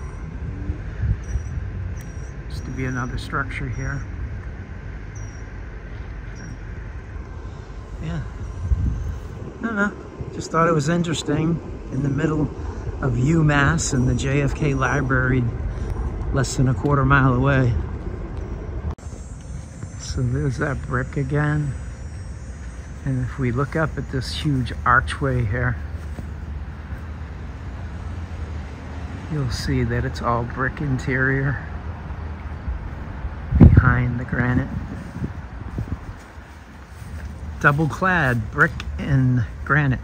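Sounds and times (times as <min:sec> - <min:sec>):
faint high steady tone: 0:00.0 - 0:28.0
low outdoor rumble: 0:00.0 - 0:40.0.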